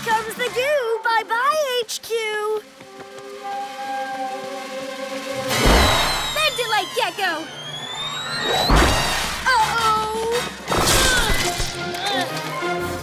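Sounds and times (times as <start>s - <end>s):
cartoon action music: 5.3s - 12.8s
squeaky cartoon character voices: 6.0s - 7.6s
heavy impact thuds: 8.4s - 9.5s.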